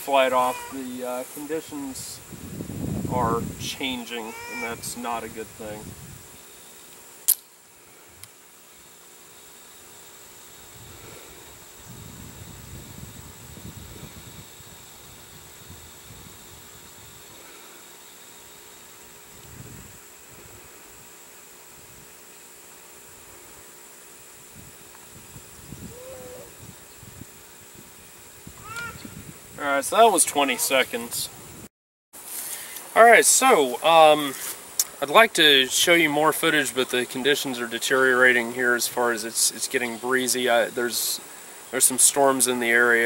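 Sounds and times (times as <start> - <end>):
high insect drone: 0.0 - 43.0
wind rumble on microphone: 2.0 - 3.8, 4.8 - 6.4, 10.6 - 17.4, 19.3 - 20.8, 24.4 - 29.6, 31.2 - 31.7
rubber band snap: 7.2 - 7.5.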